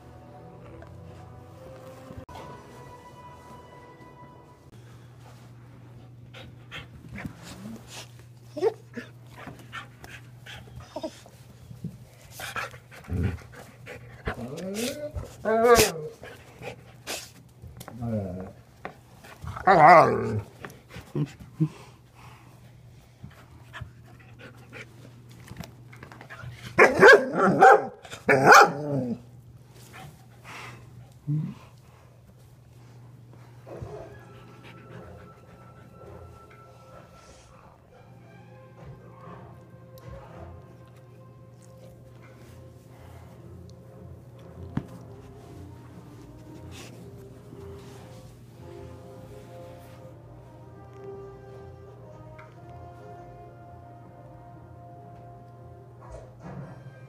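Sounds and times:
dogs moving on carpet: 5.2 - 15.4, 44.4 - 50.2
dogs panting: 5.9 - 15.4, 20.6 - 25.4.

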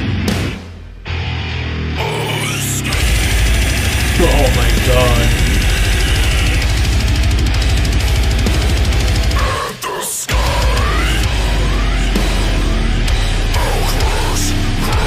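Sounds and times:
hardcore metal music: 0.0 - 15.0
harsh vocal: 2.0 - 7.0, 8.7 - 15.0.

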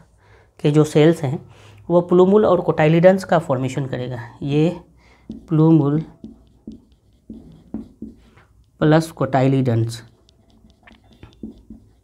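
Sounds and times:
marker writing on whiteboard: 4.4 - 12.0.

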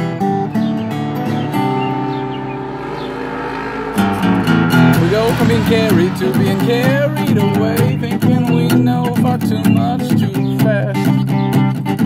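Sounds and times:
acoustic guitar chord ringing: 0.0 - 9.9
guitar strum: 0.0 - 11.9
low rumble: 2.8 - 8.2.

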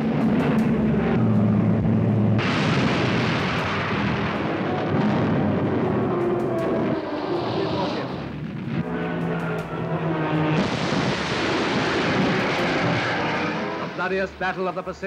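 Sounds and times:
propeller plane engine drone: 0.0 - 15.0
battle noise: 2.4 - 14.6.

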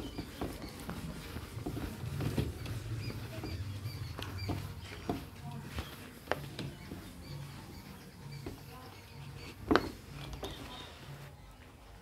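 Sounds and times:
duster squeaking on whiteboard: 0.0 - 11.6.

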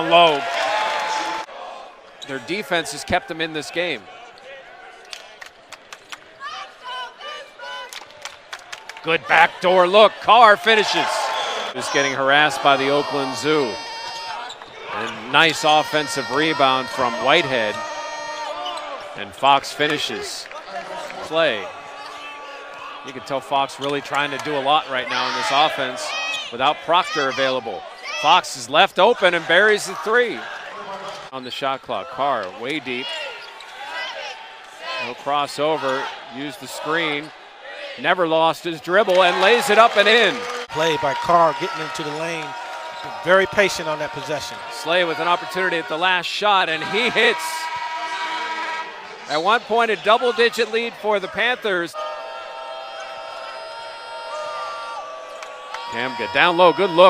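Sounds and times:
players and crowd calling out: 0.0 - 5.4, 6.3 - 8.1, 9.0 - 57.0
sneakers squeaking: 18.4 - 19.2, 33.0 - 34.1, 42.9 - 43.3.

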